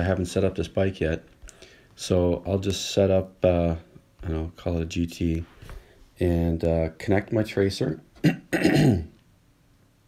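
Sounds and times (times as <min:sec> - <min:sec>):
man clearing his throat: 0:08.2 - 0:09.2.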